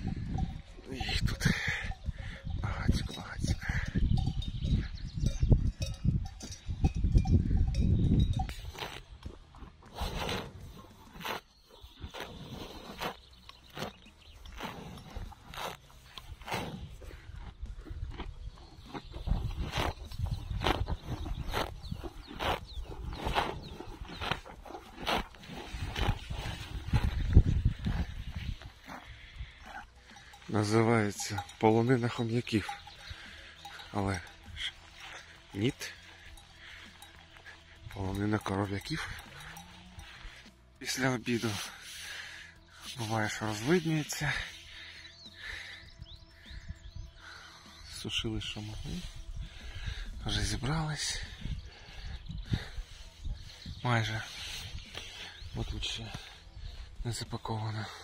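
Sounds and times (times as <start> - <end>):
cows tearing and chewing grass: 3.9 - 58.0
low rumbling: 12.0 - 41.0.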